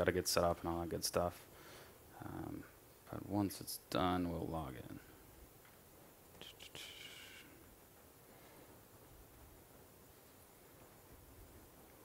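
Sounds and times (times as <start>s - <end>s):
person whispering: 6.4s - 7.6s.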